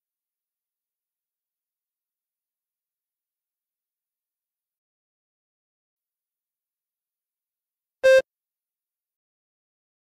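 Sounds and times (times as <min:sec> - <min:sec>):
short electronic beep: 0:08.0 - 0:08.2.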